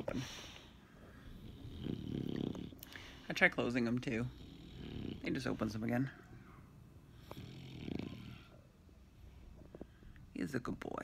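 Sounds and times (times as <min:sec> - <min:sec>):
dog snoring: 0:01.1 - 0:02.9, 0:03.6 - 0:06.1, 0:07.1 - 0:08.7.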